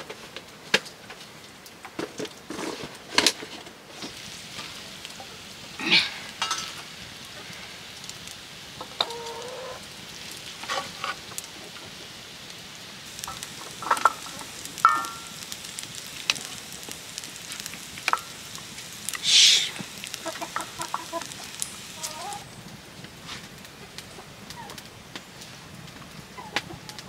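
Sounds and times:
noodles sizzling in a wok: 0:02.2 - 0:26.8
metal ladle scraping a pan: 0:13.2 - 0:15.5.

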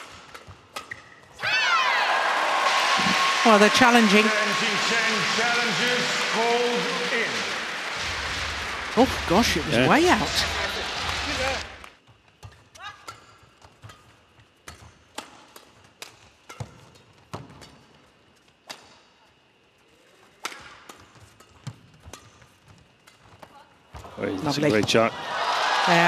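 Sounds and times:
rackets striking shuttlecock: 0:00.0 - 0:01.3, 0:13.0 - 0:17.9
court shoes squeaking: 0:00.0 - 0:01.5, 0:12.1 - 0:19.4, 0:20.1 - 0:25.0.

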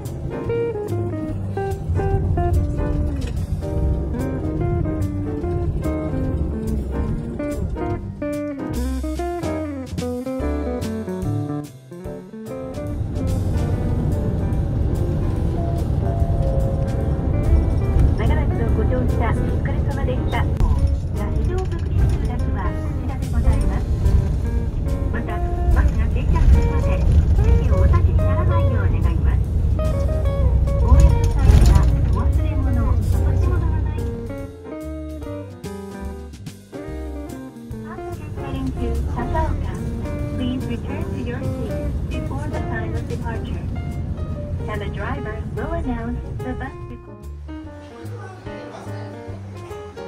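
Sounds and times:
bus engine and road rumble: 0:00.0 - 0:11.0, 0:12.4 - 0:50.0
guitar music: 0:00.0 - 0:50.0.

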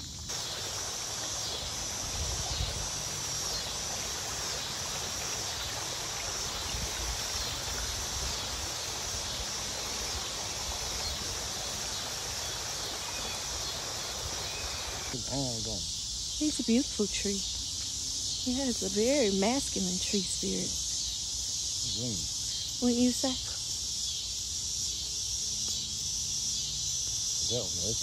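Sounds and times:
creek water rushing: 0:00.0 - 0:15.3
high insect drone: 0:00.0 - 0:28.0
wind rumble on microphone: 0:01.9 - 0:03.0.

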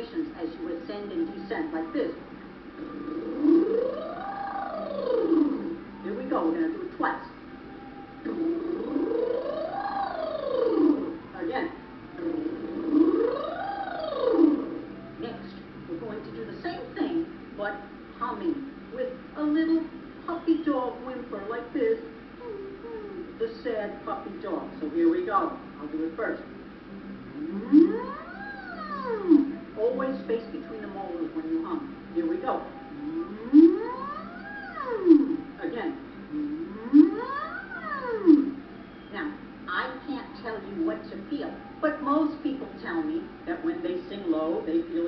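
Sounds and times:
woman humming: 0:07.8 - 0:11.3, 0:22.4 - 0:23.4, 0:27.3 - 0:30.7, 0:32.4 - 0:35.6, 0:36.3 - 0:38.6.

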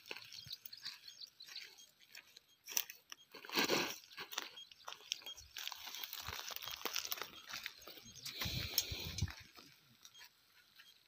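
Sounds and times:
footsteps crunching through dry grass: 0:00.0 - 0:11.0.

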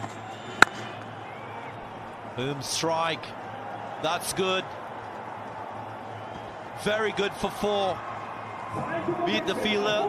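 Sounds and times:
stadium crowd noise: 0:00.0 - 0:10.0
cricket bat crack: 0:00.6 - 0:01.1.

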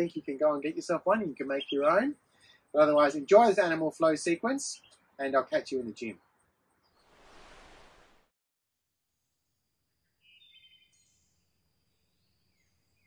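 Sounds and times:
faint outdoor background hiss: 0:00.0 - 0:08.3
faint bird chirps: 0:01.4 - 0:02.9, 0:10.0 - 0:13.0.

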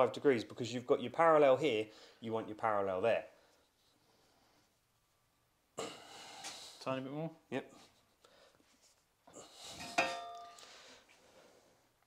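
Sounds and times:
ringing metallic clank: 0:09.8 - 0:10.6.

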